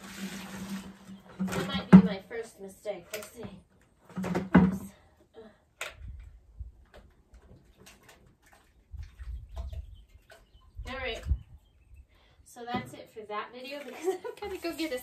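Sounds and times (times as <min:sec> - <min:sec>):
plastic buckets clicking and knocking: 0:00.0 - 0:02.3, 0:02.9 - 0:05.2, 0:05.8 - 0:11.5.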